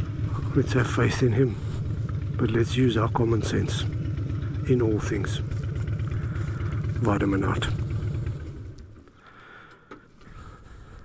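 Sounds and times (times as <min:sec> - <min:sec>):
faint hum: 0:00.0 - 0:11.0
motorcycle engine rumble: 0:00.0 - 0:11.0.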